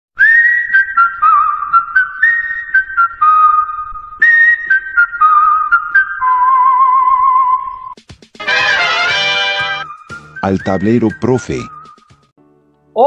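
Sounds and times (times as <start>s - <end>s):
whistled jingle tune: 0.2s - 12.3s.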